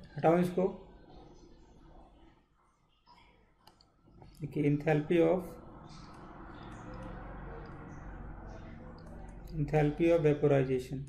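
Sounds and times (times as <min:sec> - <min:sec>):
faint computer mouse clicks: 0:03.6 - 0:03.9.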